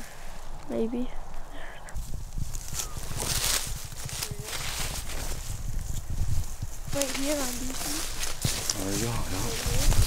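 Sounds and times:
footsteps crunching dry leaves: 2.2s - 10.0s.

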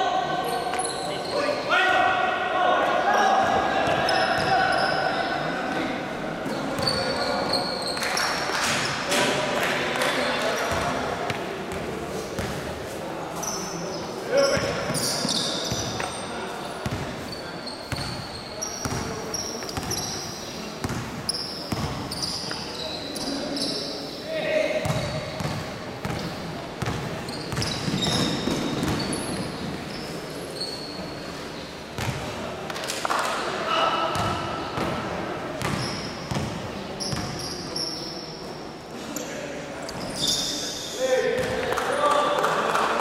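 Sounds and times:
sneakers squeaking on floor: 0.5s - 1.7s, 3.4s - 5.5s, 6.4s - 9.0s, 11.7s - 32.3s, 35.6s - 41.6s.

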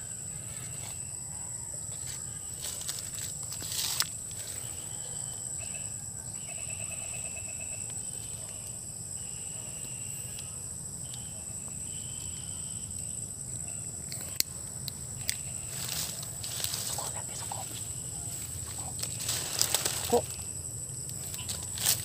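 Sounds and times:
insects chirring: 0.0s - 22.0s
trilling insect calls: 0.0s - 22.0s.

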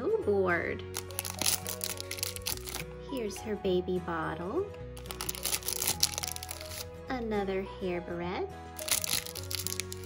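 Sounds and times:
background music: 0.0s - 10.0s
foil wrapper crinkling and tearing: 0.9s - 2.9s, 5.0s - 6.9s, 8.8s - 10.0s.

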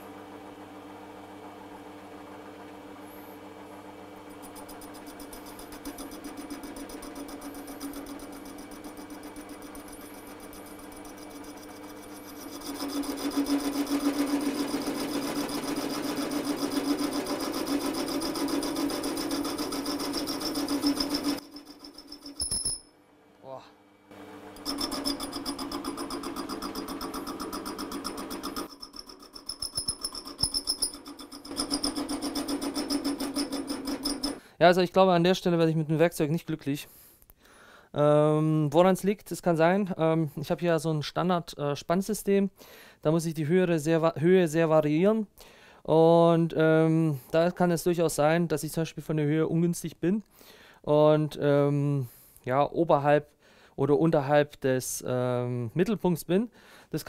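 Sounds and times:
metal lathe running: 4.3s - 22.5s, 24.5s - 34.4s
parting tool cutting metal: 4.3s - 22.8s, 24.6s - 34.4s.

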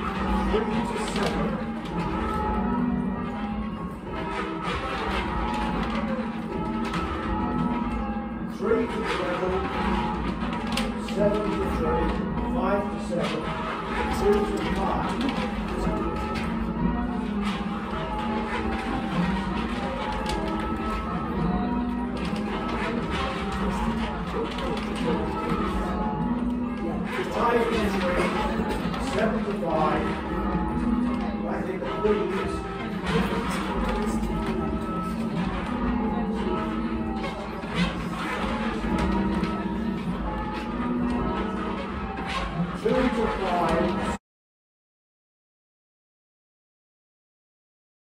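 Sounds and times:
church bells ringing: 0.0s - 44.2s.

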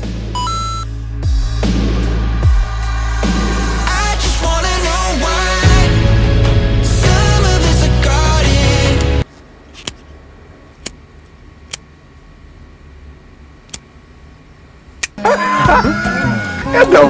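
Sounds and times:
film music: 0.0s - 9.2s.

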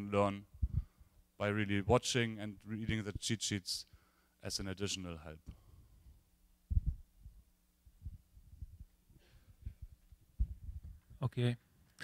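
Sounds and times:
faint electrical hum: 0.0s - 12.0s
microphone handling thumps: 0.6s - 0.9s, 6.7s - 7.4s, 9.6s - 11.1s.

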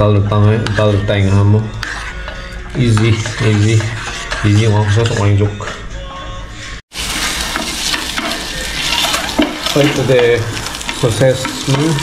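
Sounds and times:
spoon stirring and scraping: 1.6s - 5.4s, 7.0s - 12.0s
food sizzling in a frying pan: 6.9s - 12.0s.

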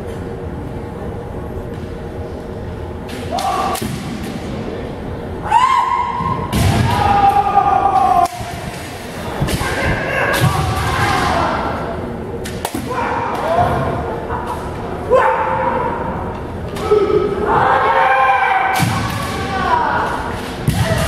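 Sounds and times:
fencers shouting: 3.2s - 4.1s, 5.4s - 12.0s, 12.6s - 21.0s.

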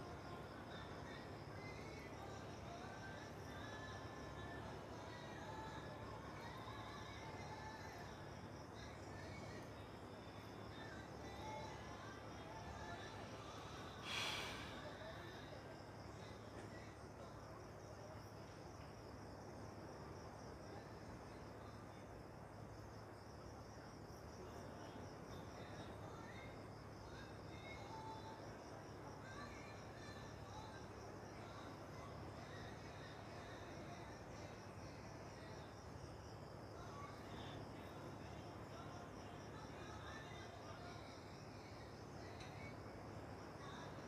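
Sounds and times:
insects chirping: 0.0s - 44.0s.

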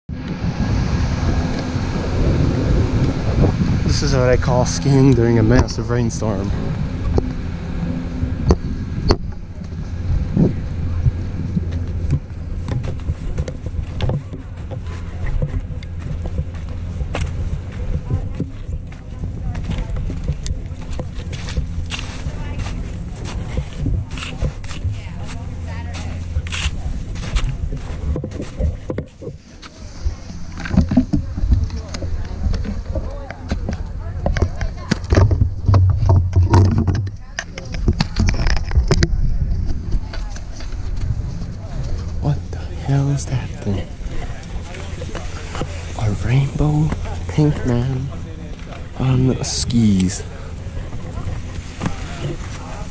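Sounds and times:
wind rumble: 0.0s - 52.9s.

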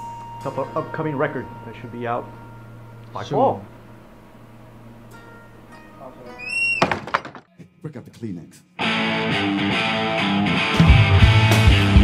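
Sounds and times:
low electric hum: 0.0s - 6.5s
instruments knocking and clicking: 6.8s - 7.5s.

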